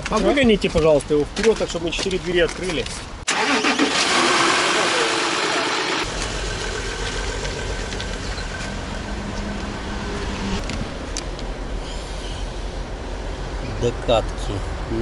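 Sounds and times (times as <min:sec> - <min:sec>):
car engine idling: 0:03.3 - 0:13.4.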